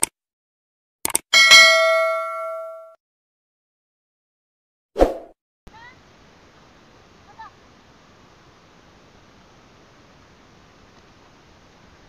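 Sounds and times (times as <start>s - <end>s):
notification bell ding: 1.4s - 3.0s
faint outdoor noise: 5.7s - 12.0s.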